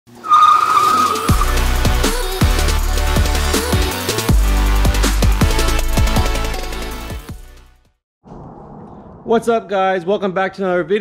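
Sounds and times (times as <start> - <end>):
tyre screech: 0.1 - 2.0
electronic music with bass hits: 1.1 - 7.7.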